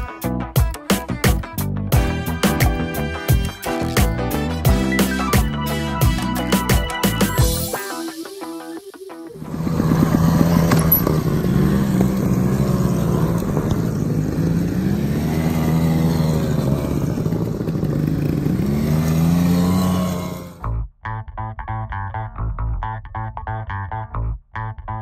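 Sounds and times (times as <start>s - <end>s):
background music: 0.0s - 11.8s
motorcycle engines revving: 9.4s - 20.6s.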